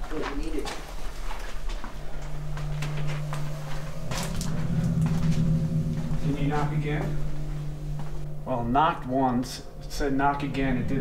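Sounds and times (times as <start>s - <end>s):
steady low hum: 0.8s - 11.0s.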